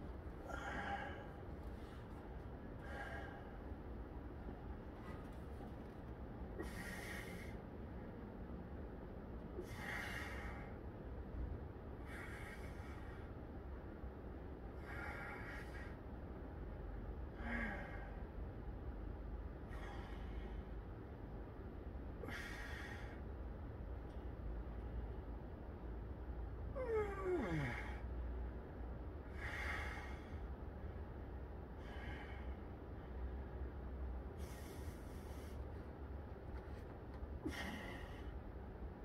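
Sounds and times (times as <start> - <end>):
man breathing: 0.0 - 5.9, 6.5 - 7.9, 9.5 - 11.0, 11.9 - 13.5, 14.6 - 16.2, 17.2 - 18.6, 19.6 - 20.9, 22.2 - 23.4, 29.2 - 38.8
steady low rumble: 0.0 - 39.0
man groaning: 26.8 - 27.9.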